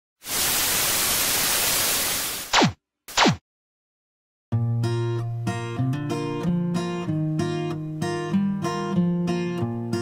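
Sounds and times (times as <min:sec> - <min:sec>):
tv static hiss: 0:00.2 - 0:02.6.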